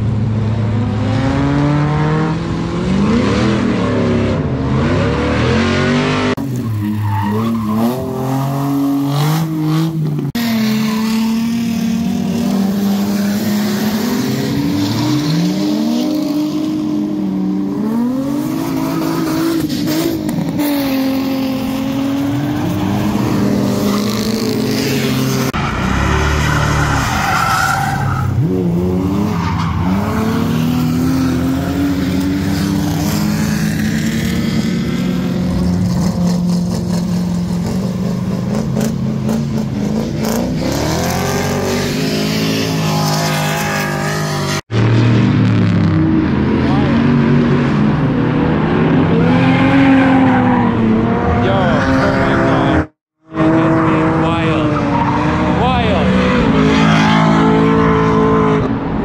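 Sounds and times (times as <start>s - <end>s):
car engines revving: 0.0s - 59.0s
tyres squealing on asphalt: 6.4s - 8.9s, 10.4s - 15.2s, 18.5s - 32.7s, 41.6s - 44.6s, 54.1s - 58.3s.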